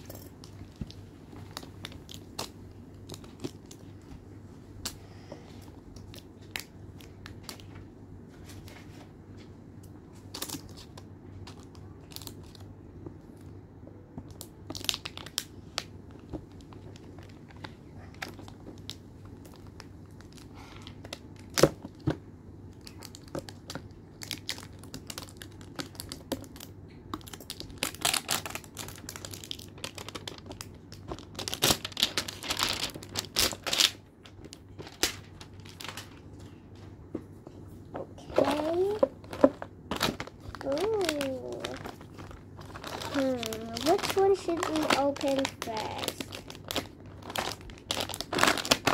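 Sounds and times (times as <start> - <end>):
foil packets crinkling: 14.3 - 22.0, 22.7 - 36.6, 38.4 - 48.9
child's voice: 38.0 - 39.2, 40.6 - 41.8, 43.0 - 46.3.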